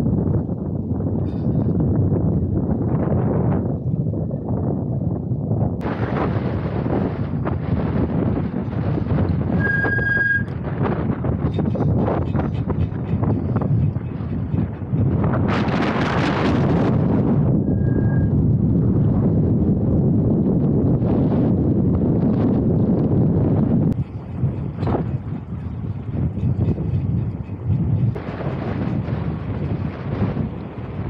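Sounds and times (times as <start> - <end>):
wind buffeting microphone: 0.0 - 31.0
high squeal: 9.5 - 10.5, 17.6 - 18.3.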